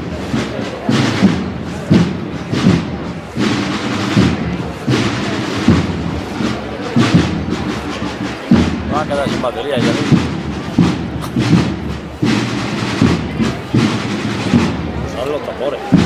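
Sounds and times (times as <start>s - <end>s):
drums beating slow march: 0.0s - 16.0s.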